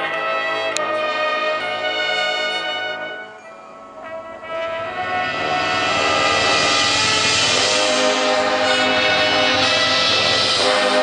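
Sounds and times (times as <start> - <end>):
sustained brass chord: 0.0 - 11.0
marching band percussion: 4.0 - 11.0.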